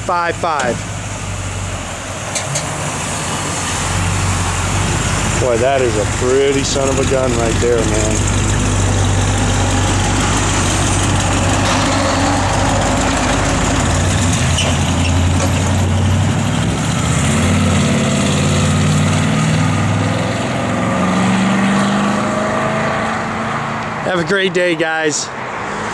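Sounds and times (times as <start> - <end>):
pickup truck engine idling and accelerating: 0.0 - 25.9.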